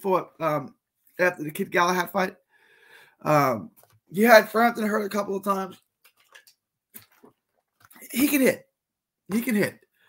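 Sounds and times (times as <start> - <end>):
man gulping water: 6.0 - 8.2.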